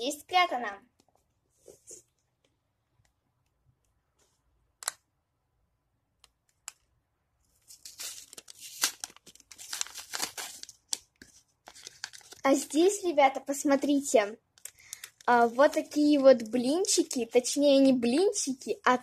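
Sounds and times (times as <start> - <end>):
paper crinkling and tearing: 7.6 - 12.9.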